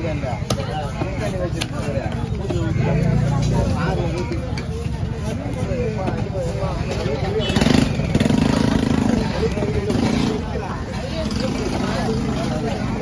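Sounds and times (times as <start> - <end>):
people talking: 0.0 - 13.0.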